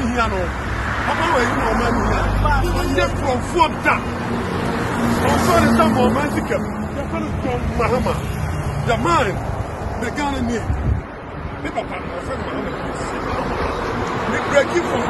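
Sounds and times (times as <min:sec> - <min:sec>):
road traffic noise: 0:00.0 - 0:15.0.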